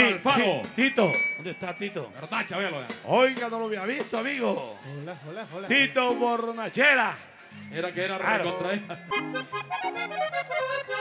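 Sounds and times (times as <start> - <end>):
button accordion playing: 5.7 - 6.8, 9.1 - 11.0.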